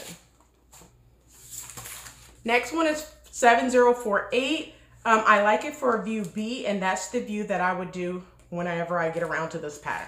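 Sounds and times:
paper envelope rustling: 0.0s - 2.5s
low steady hum: 0.0s - 10.0s.

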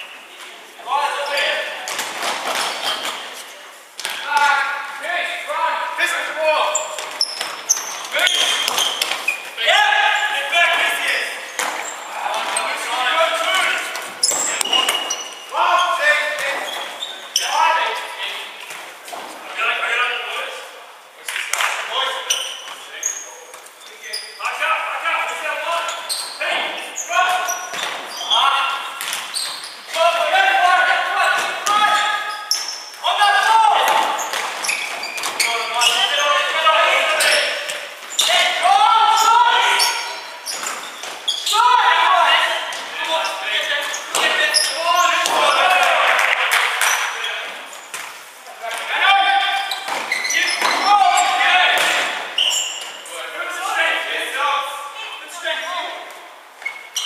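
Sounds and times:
players shouting: 8.0s - 18.6s, 29.9s - 32.4s, 33.0s - 34.5s, 35.4s - 40.4s, 41.3s - 47.4s, 48.6s - 52.4s.

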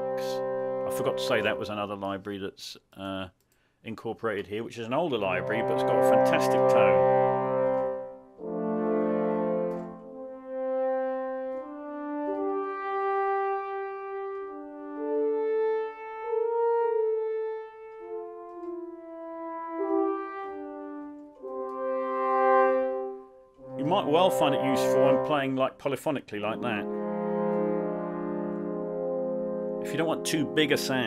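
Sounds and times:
french horn sustained chords: 0.0s - 1.8s, 5.2s - 25.8s, 26.4s - 31.0s.

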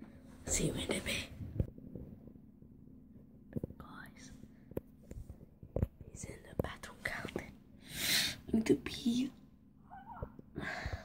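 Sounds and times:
person whispering: 3.7s - 4.4s.

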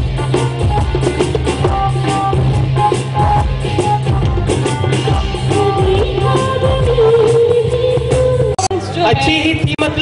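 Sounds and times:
hand drum beats: 0.0s - 9.8s
bass line: 0.0s - 10.0s
keyboard: 0.0s - 10.0s.

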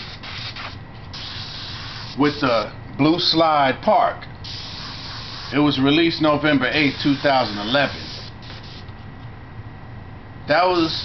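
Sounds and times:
airbrush spraying hiss: 0.0s - 2.2s, 4.4s - 5.7s, 6.7s - 8.9s, 10.7s - 11.0s.

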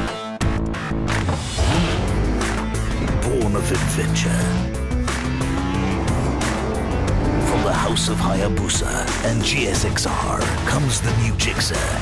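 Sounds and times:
motorcycle engine revving: 1.5s - 9.3s.

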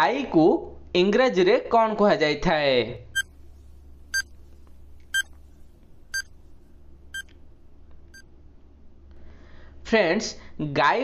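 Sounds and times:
faint low hum: 0.6s - 11.0s.

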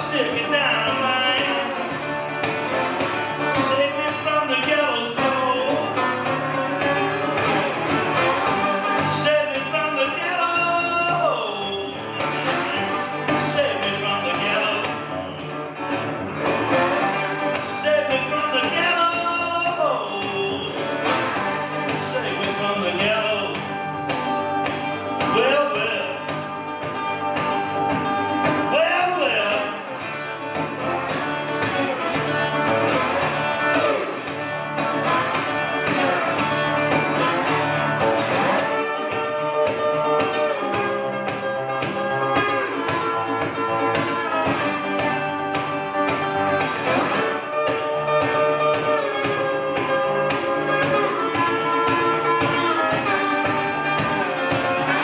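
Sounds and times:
resonator guitar played fast: 0.0s - 55.0s.

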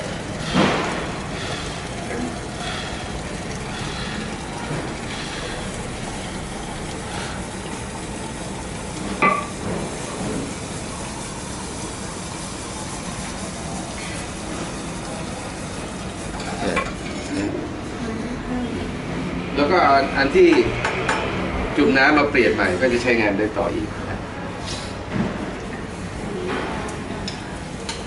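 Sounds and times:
liquid nitrogen hissing and sputtering: 0.0s - 18.2s.

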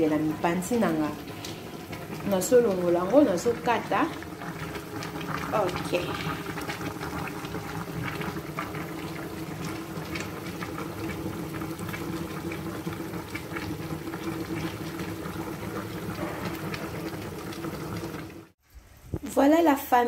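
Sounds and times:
pot bubbling on stovetop: 0.0s - 19.6s.

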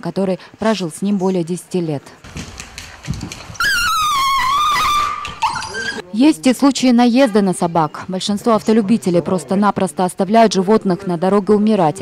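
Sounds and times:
dog whining: 3.6s - 6.0s.

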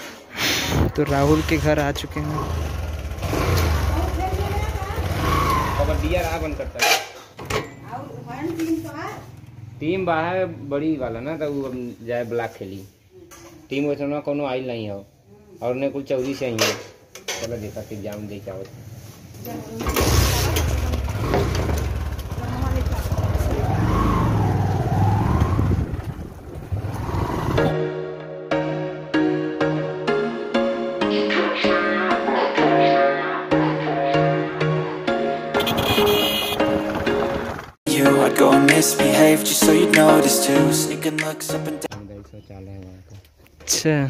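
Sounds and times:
motorcycle engine rumbling: 1.0s - 6.8s, 7.6s - 11.2s, 18.4s - 27.7s, 35.6s - 37.8s
wind on microphone: 24.3s - 27.7s.

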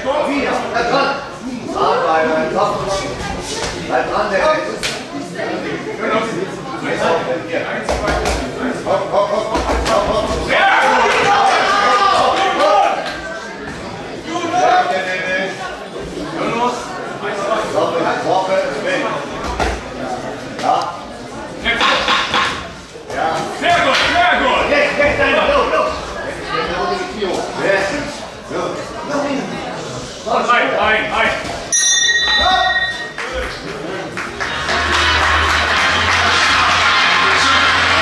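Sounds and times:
crowd noise: 0.0s - 38.0s
boxing ring bell ringing: 31.7s - 33.4s.

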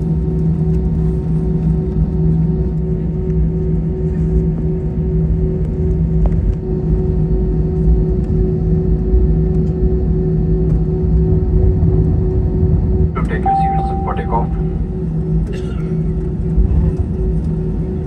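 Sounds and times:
aircraft engines idling rumble: 0.0s - 18.0s
constant cabin hum: 0.0s - 18.0s.

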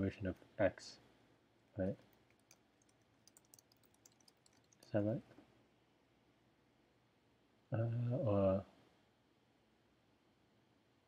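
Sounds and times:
keyboard typing: 1.9s - 5.0s.

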